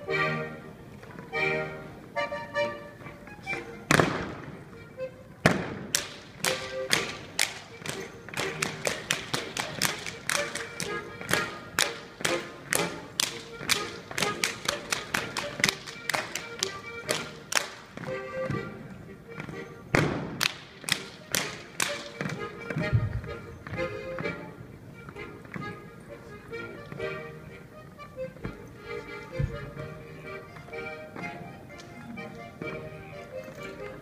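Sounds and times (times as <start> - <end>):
faint music: 0.0 - 34.0
dancers slapping clapping and stomping: 5.4 - 18.1, 20.0 - 22.4.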